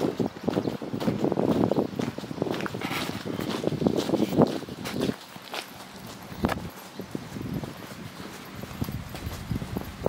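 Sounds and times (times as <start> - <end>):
footsteps on wet gravel: 0.0 - 10.0.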